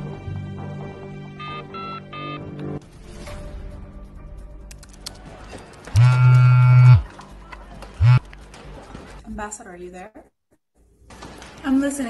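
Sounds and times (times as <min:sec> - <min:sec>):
harsh electronic buzz: 0:06.0 - 0:07.0, 0:08.0 - 0:08.2
faint background music: 0:07.0 - 0:10.3.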